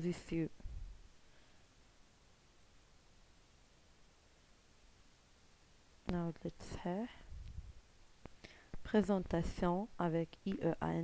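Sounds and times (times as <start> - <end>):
person speaking: 0.0 - 0.6, 6.0 - 7.5, 8.8 - 11.0.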